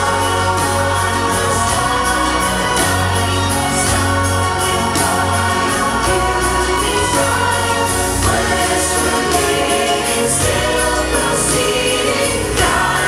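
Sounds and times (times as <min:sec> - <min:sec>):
choir singing: 0:00.0 - 0:13.0
instrumental accompaniment: 0:00.0 - 0:13.0.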